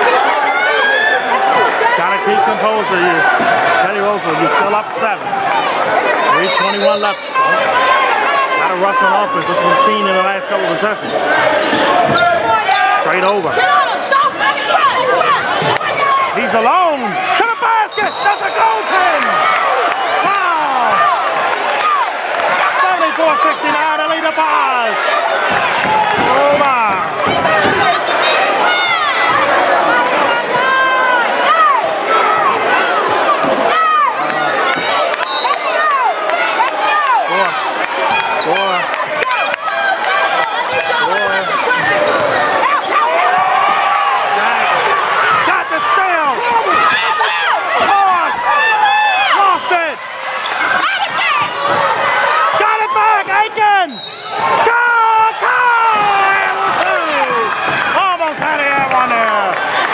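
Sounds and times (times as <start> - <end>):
overlapping voices: 0.0 - 59.9.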